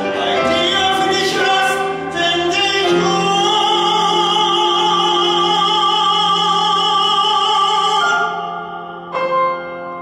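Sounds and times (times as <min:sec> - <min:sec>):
man singing into microphone: 0:00.0 - 0:08.9
instrumental accompaniment: 0:00.0 - 0:10.0.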